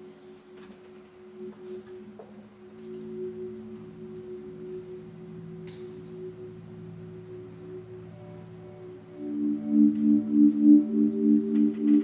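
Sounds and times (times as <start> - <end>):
electric guitar notes: 0.0 - 12.0.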